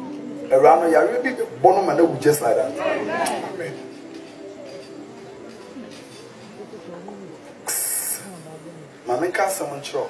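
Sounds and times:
low murmuring voice: 0.0 - 10.0
loud hiss: 7.6 - 8.5.

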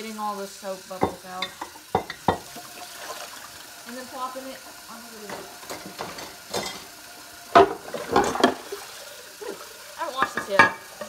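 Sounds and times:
dishware clinking: 1.0 - 2.5, 5.3 - 6.9, 7.5 - 8.6, 10.1 - 10.9
water sloshing in sink: 1.0 - 11.0.

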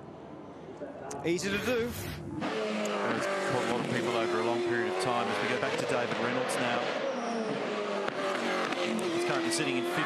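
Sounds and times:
race car engine running hard: 1.5 - 10.0.

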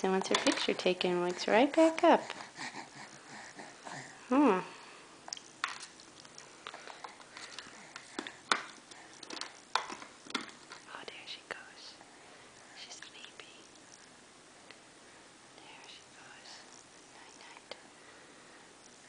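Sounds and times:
baby breathy vocal sounds: 1.8 - 4.3
baby mouth smacks and clicks: 5.3 - 10.9.

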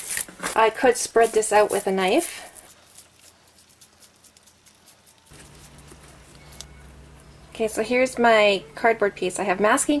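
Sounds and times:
steady low hum: 0.8 - 10.0.

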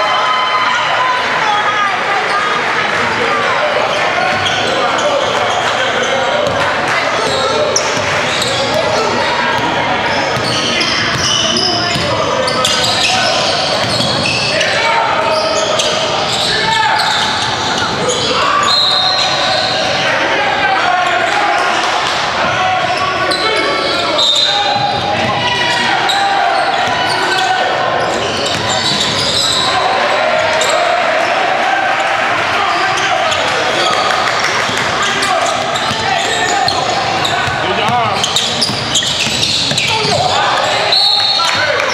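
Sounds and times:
hubbub of voices: 0.0 - 41.9.

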